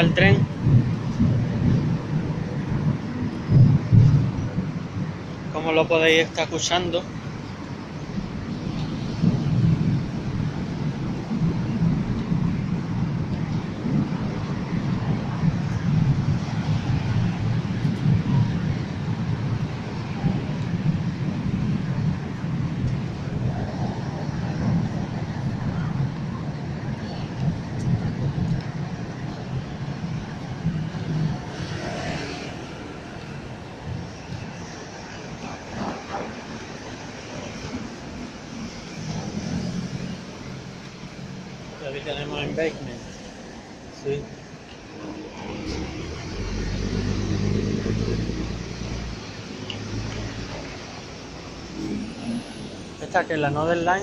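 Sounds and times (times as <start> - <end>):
train rumbling on elevated track: 0.0 - 54.0.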